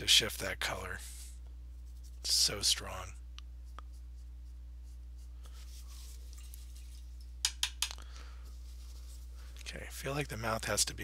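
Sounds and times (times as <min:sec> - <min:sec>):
low electrical hum: 0:00.0 - 0:11.0
paint brush scratching canvas: 0:01.1 - 0:02.5, 0:03.6 - 0:07.2
quick sharp clicks: 0:07.4 - 0:08.0.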